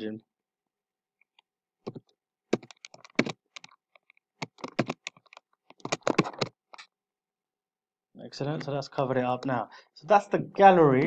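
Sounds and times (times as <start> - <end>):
keyboard typing: 1.9 - 6.9.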